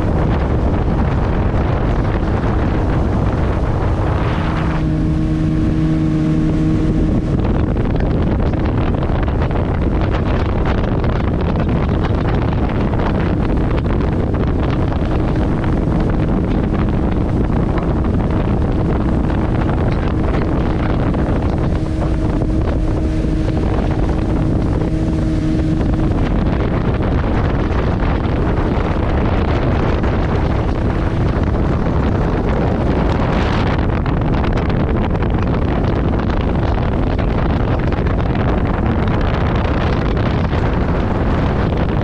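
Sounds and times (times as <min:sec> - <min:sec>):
motorboat engine running: 0:00.0 - 0:42.0
wind buffeting microphone: 0:00.0 - 0:42.0.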